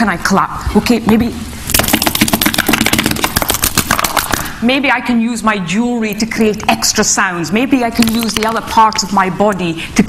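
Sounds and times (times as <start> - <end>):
hands clapping rapidly: 1.8 - 4.5.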